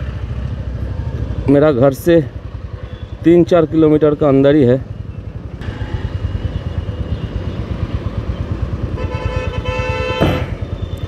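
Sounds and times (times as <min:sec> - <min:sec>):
vehicle horn: 0:08.9 - 0:10.6
motorcycle engine thumping: 0:10.1 - 0:10.8.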